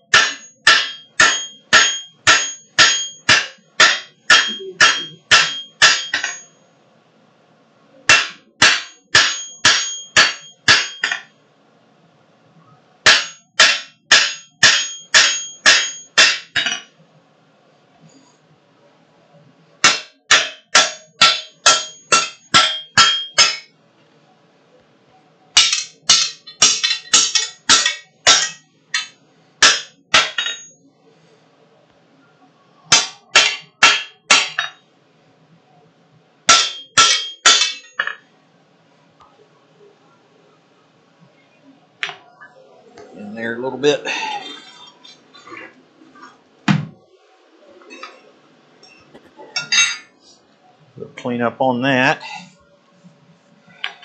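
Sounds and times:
hammer striking hot metal on anvil: 0.0 - 6.5, 8.1 - 11.3, 13.0 - 16.9, 19.8 - 23.7, 25.6 - 30.8, 32.9 - 34.8, 36.5 - 38.2.

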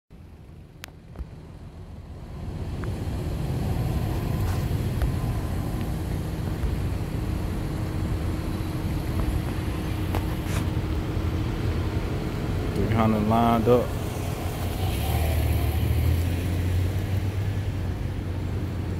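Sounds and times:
car engine idling: 0.1 - 18.9.

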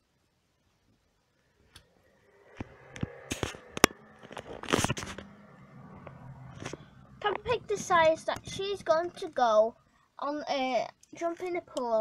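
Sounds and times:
phone handling rustling and scraping: 2.6 - 5.4, 6.0 - 9.3.

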